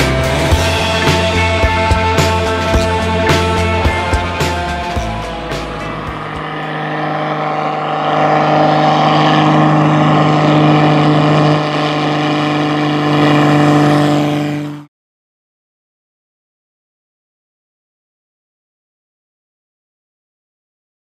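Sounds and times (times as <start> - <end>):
biplane engine and propeller drone: 0.0 - 14.9.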